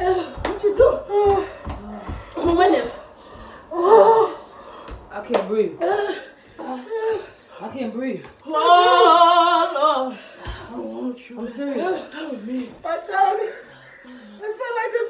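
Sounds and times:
women crying out: 0:08.5 - 0:10.2.

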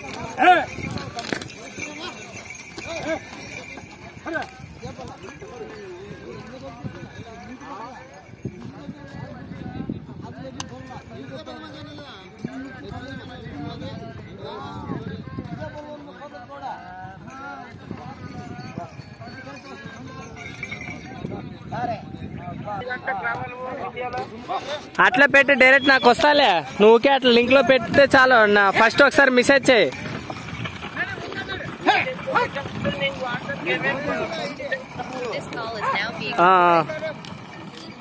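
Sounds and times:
hooves clattering on dry ground: 0:00.0 - 0:38.0
men calling out and talking: 0:00.0 - 0:38.0.

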